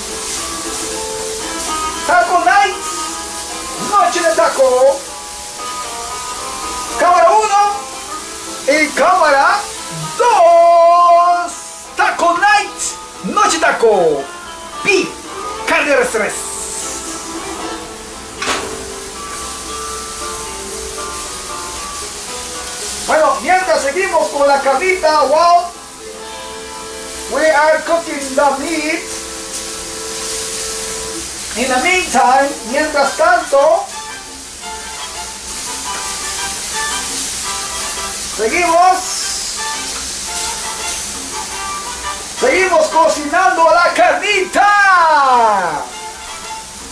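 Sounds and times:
background music with held notes: 0:00.0 - 0:46.9
beef sizzling in a frying pan: 0:00.0 - 0:46.9
man talking: 0:02.0 - 0:02.9, 0:03.7 - 0:05.1, 0:06.9 - 0:07.9, 0:08.6 - 0:16.6, 0:23.1 - 0:25.8, 0:27.2 - 0:29.2, 0:31.5 - 0:34.0, 0:38.3 - 0:39.4, 0:42.4 - 0:46.0.

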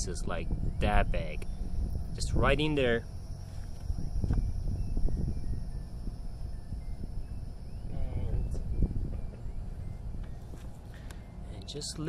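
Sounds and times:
wind rumble on microphone: 0:00.0 - 0:11.2.

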